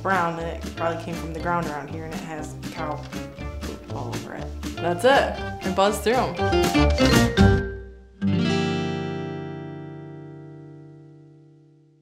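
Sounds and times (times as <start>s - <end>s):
music chord ringing out: 6.2s - 12.0s.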